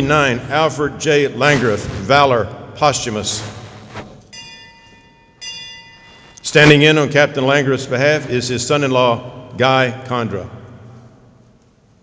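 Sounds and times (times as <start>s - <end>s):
bell ringing: 4.3s - 7.0s.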